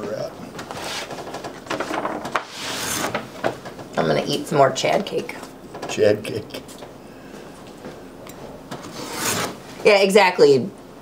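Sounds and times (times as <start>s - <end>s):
knife cutting leather: 8.9s - 9.6s.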